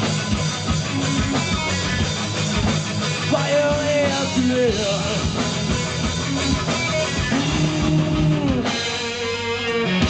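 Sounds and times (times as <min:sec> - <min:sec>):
bass guitar: 0:00.0 - 0:10.0
electric guitar chords: 0:00.0 - 0:10.0.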